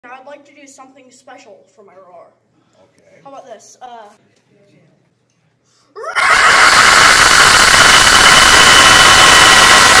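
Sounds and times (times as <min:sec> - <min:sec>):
boy roaring with harsh distortion: 0:06.0 - 0:10.0.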